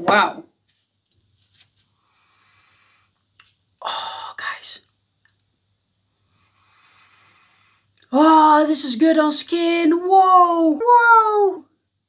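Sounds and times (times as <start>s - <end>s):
soft breath in: 2.0s - 3.1s, 6.2s - 7.9s.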